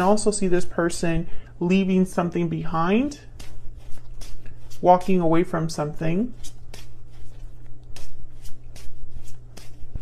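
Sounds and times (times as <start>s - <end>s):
cards being shuffled by hand: 2.9s - 5.4s, 6.2s - 10.0s.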